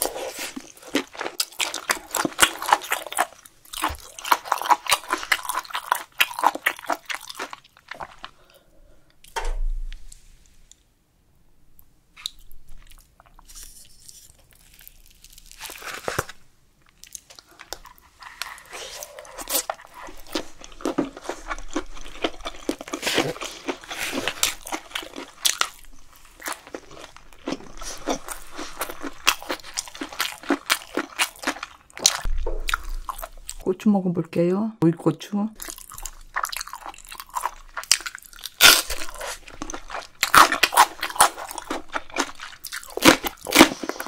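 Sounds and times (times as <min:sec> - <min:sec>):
chewing with mouth clicks: 0:00.0 - 0:08.4, 0:12.2 - 0:33.6, 0:35.6 - 0:44.0
wet chewing mouth sounds: 0:35.6 - 0:44.0.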